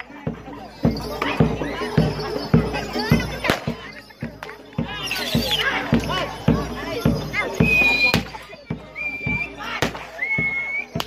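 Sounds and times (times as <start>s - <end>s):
drum beats: 0.0s - 11.0s
voices shouting: 0.0s - 11.0s.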